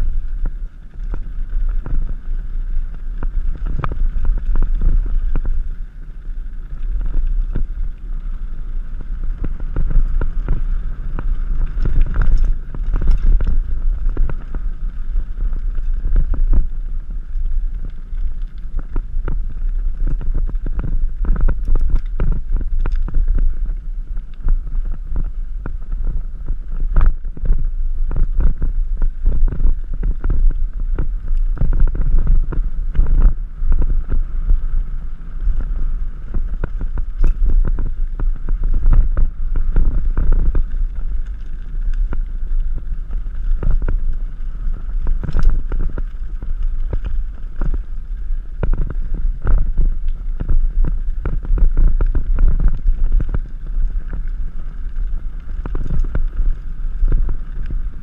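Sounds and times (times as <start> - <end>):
bike knocking and rattling: 0.0 - 58.0
tyres rumbling on gravel: 0.0 - 58.0
wind on microphone: 0.0 - 58.0.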